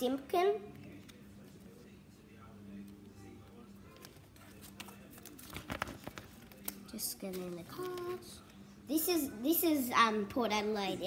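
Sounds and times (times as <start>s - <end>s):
trading cards clicking and rustling: 3.9s - 8.6s.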